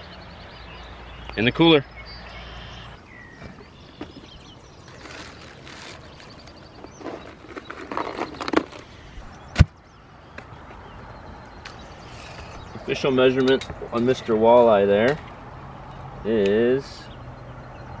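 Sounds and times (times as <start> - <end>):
ice rattling and scraping: 4.8 - 9.2.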